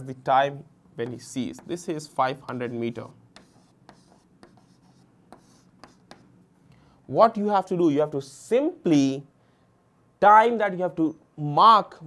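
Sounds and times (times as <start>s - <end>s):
chalk tapping and scratching: 1.0s - 6.4s.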